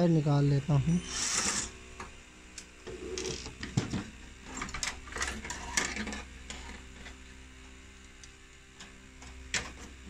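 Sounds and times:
cordless drill running: 0.0 - 8.4.

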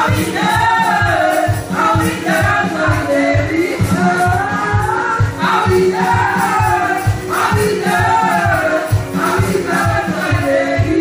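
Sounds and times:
choir singing: 0.0 - 11.0
steady beat: 0.0 - 11.0
woman singing lead: 0.0 - 11.0.

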